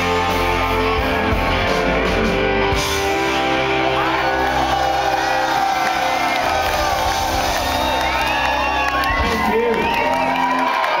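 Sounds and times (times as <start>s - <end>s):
crowd cheering and whooping: 3.2s - 11.0s.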